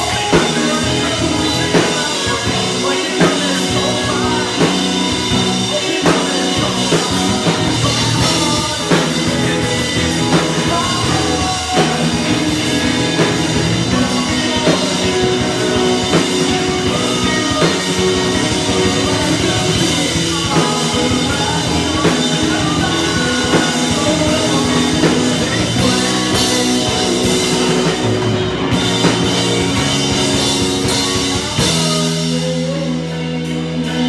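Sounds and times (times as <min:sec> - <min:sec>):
bass guitar: 0:00.0 - 0:34.0
drum kit: 0:00.0 - 0:34.0
electric guitar: 0:00.0 - 0:34.0
person singing lead vocal: 0:00.0 - 0:34.0.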